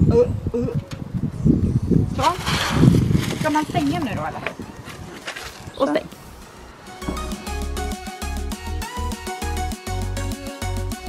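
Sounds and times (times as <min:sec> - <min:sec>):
woman talking: 0:02.2 - 0:02.5, 0:03.4 - 0:04.6, 0:05.7 - 0:06.2.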